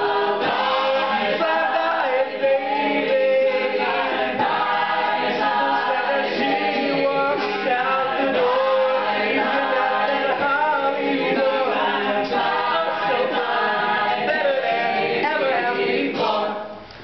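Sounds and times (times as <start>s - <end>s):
a cappella group singing in harmony: 0.0s - 16.9s.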